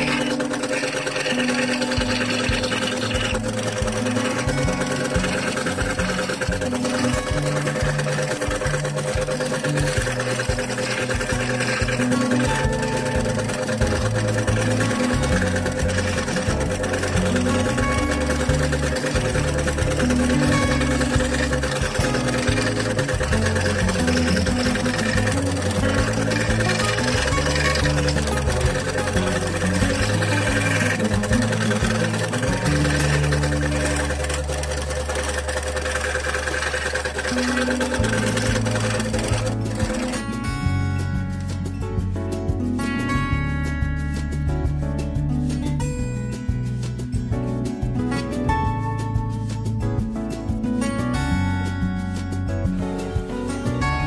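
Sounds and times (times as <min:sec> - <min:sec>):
scroll saw cutting wood: 0:00.0 - 0:40.7
background music: 0:00.0 - 0:54.0.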